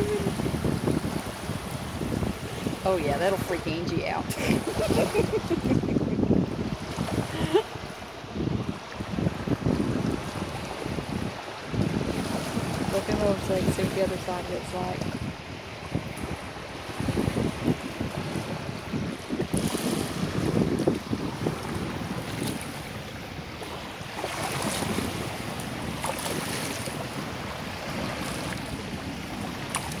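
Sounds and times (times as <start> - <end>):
surf washing over sand: 0.0 - 30.0
wind buffeting microphone: 0.0 - 30.0.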